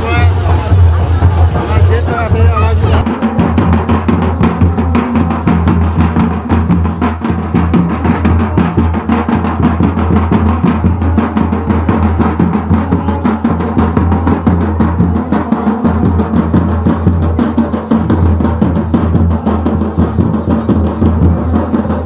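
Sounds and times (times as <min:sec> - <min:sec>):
crowd babble: 0:00.0 - 0:22.0
fast dance drums: 0:00.0 - 0:22.0.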